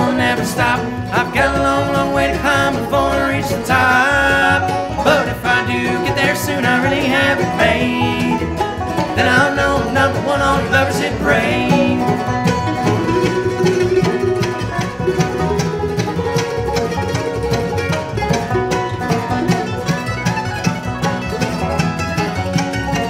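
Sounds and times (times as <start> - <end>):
harmony singing: 0.0 - 14.9
fiddle: 0.0 - 23.0
strummed acoustic guitar: 0.0 - 23.0
upright bass: 0.0 - 23.0.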